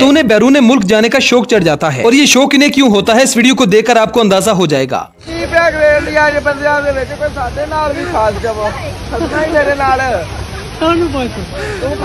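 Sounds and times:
crowd babble: 5.1 - 12.0.

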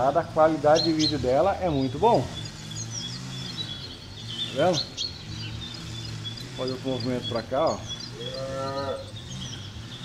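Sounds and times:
birds chirping faintly: 0.0 - 10.0
cow mooing: 8.2 - 9.1.

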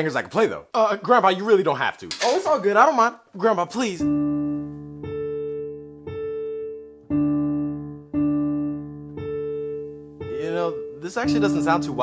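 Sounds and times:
electronic keyboard chords: 3.9 - 12.0.

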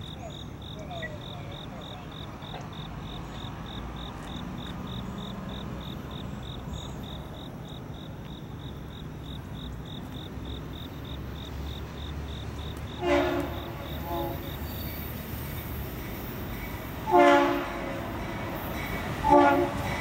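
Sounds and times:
insect chirping: 0.0 - 19.2
low rumble of a train: 0.0 - 20.0
distant locomotive horn: 12.7 - 20.0.

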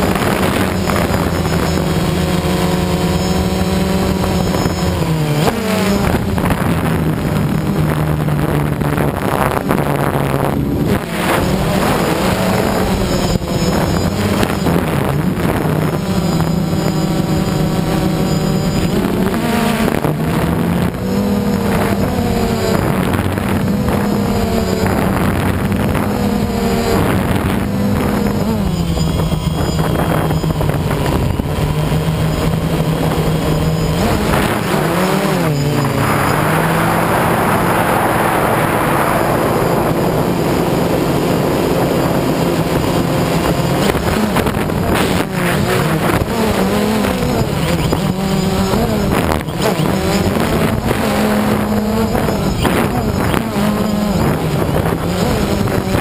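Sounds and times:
drone propellers whining: 0.0 - 56.0
rush of noise: 0.0 - 56.0.

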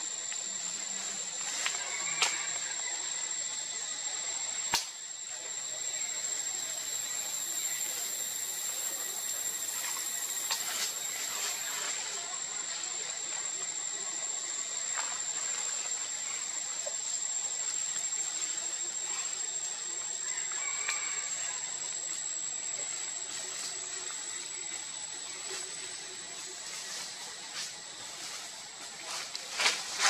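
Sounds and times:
outdoor hiss: 3.7 - 11.7.

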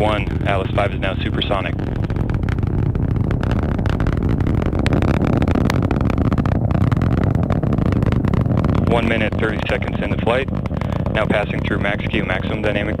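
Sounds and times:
rocket engine roar with crackling: 0.0 - 13.0.

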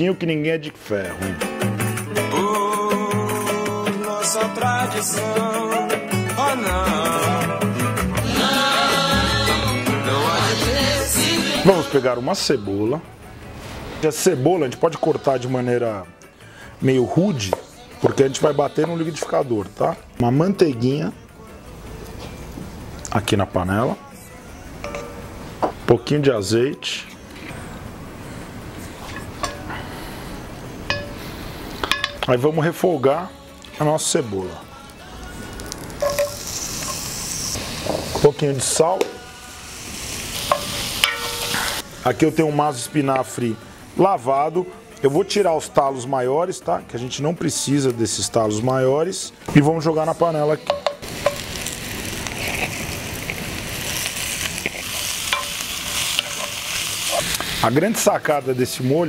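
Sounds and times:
butter sizzling in a skillet: 35.4 - 42.0, 50.6 - 59.0
spoon clicking against pan: 50.7 - 51.5.

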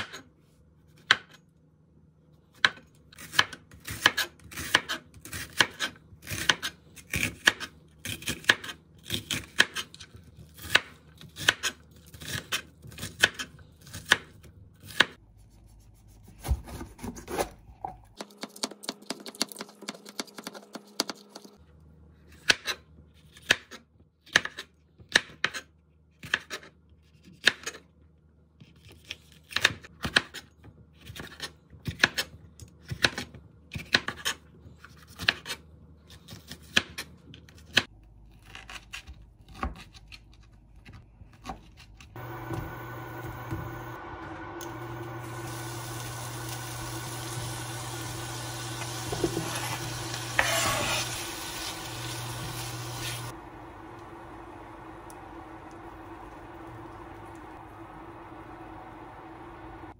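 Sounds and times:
food sizzling in a frying pan: 42.2 - 59.8.

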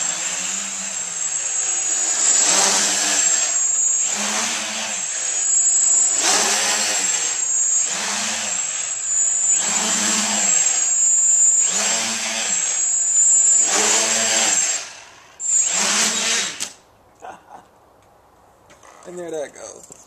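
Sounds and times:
steady high whine: 0.0 - 16.6
quadcopter motors buzzing: 0.0 - 16.8.

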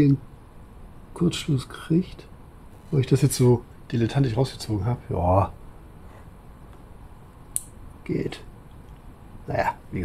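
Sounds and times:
sharp click: 7.5 - 7.8.

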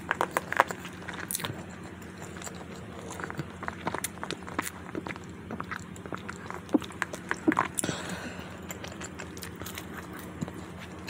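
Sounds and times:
wet chewing: 0.0 - 11.0
mouth clicks and smacks: 2.2 - 7.9.

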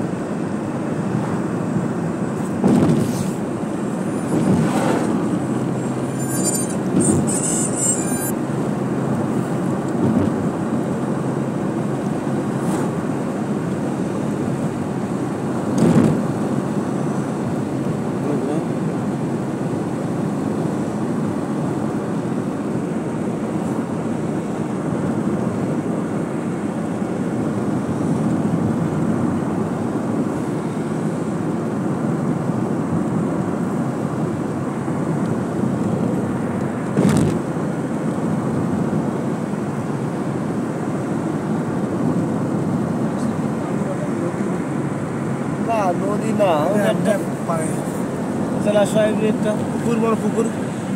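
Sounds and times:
car road and engine noise: 0.0 - 50.9.

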